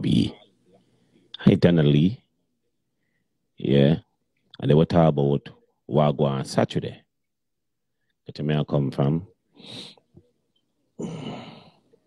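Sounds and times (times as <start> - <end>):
man sighing: 11.0 - 11.8.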